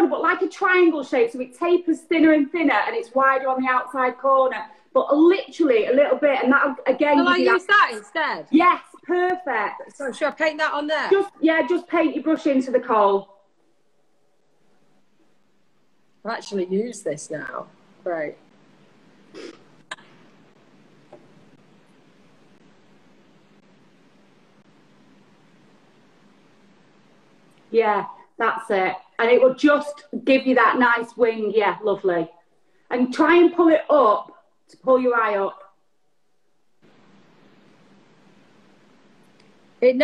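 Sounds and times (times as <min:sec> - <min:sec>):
faint microphone hiss: 0:00.0 - 0:40.0.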